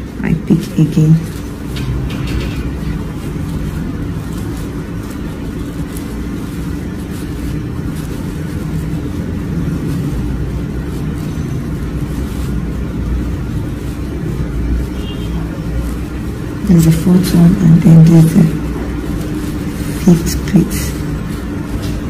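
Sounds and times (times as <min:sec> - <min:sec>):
faint rustles: 0:00.0 - 0:22.0
low mechanical hum: 0:00.0 - 0:22.0.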